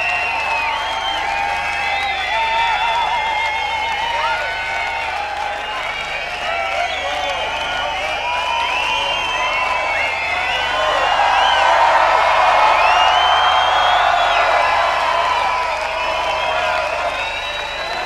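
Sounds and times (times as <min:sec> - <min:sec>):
crowd cheering and shouting: 0:00.0 - 0:18.0.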